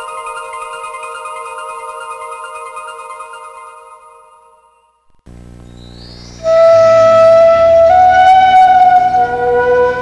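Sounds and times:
flute-like wind instrument notes: 6.4 - 10.0.

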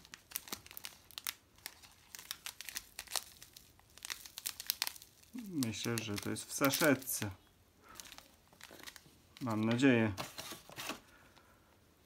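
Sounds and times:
packaging crinkling: 0.0 - 11.1.

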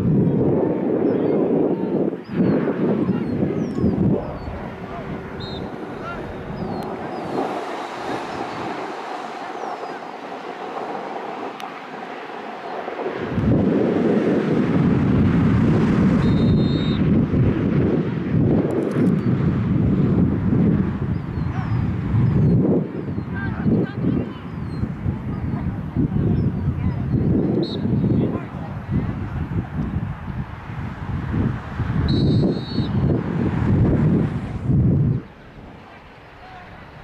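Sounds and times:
faint distant voices: 0.0 - 13.4
wind buffeting microphone: 0.0 - 37.0.

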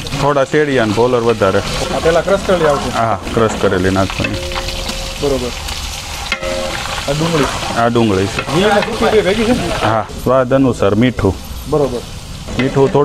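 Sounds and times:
hot oil sizzling in a pot: 0.0 - 13.0.

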